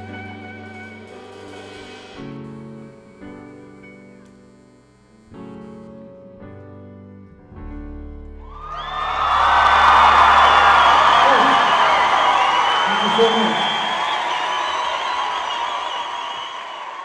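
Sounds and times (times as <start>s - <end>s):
audience applauding and cheering: 8.4s - 17.0s
whoops and whistles: 8.4s - 17.0s.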